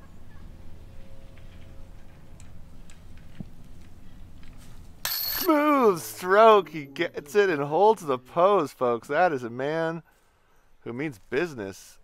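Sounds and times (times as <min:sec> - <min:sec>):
faint held tone: 0:05.0 - 0:08.7.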